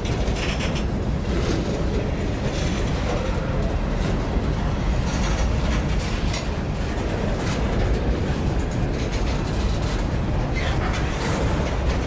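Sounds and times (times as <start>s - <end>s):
train wheels rumbling on rail: 0.0s - 12.0s
wheels clacking over rail joints: 0.0s - 12.0s.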